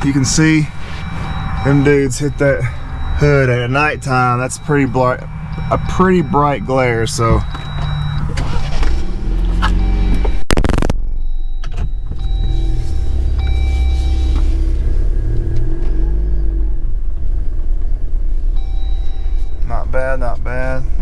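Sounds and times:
car engine rumbling: 0.0 - 21.0.

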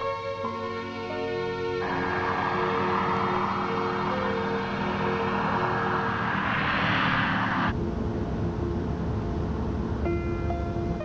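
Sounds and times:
film score held notes: 0.0 - 11.0
car driving past: 1.7 - 7.8
low rumble inside moving car: 1.8 - 11.0.

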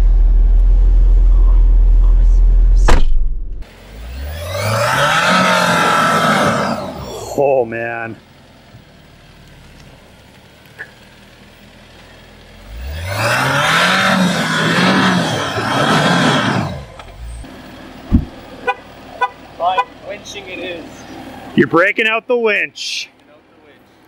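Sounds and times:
thump: 2.7 - 3.6, 18.1 - 18.4
engine revving: 2.8 - 8.2, 12.5 - 21.6
wheels spinning in mud: 9.4 - 17.4.

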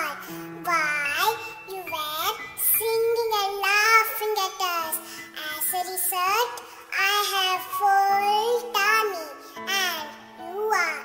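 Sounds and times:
child singing: 0.0 - 11.0.

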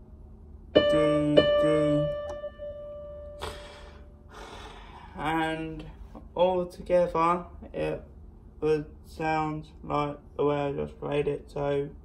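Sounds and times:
held electronic keyboard note: 0.8 - 4.0
breathy exhale: 3.4 - 5.2.

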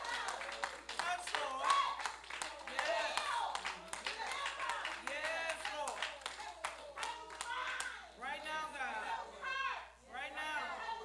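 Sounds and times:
hand claps: 0.0 - 8.0.

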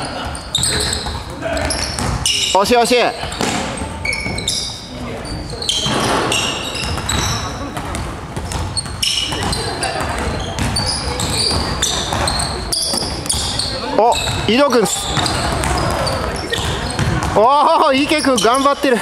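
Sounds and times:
shoes squeaking on wooden floor: 0.0 - 19.0
basketball bouncing: 0.2 - 2.5, 3.2 - 4.6, 5.8 - 17.5.

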